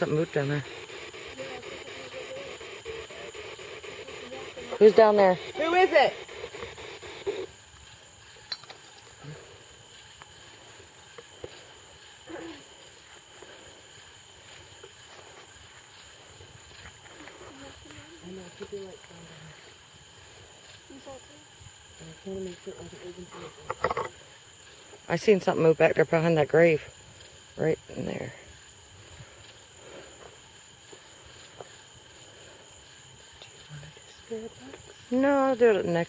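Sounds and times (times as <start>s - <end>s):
crickets trilling: 0.0s - 36.0s.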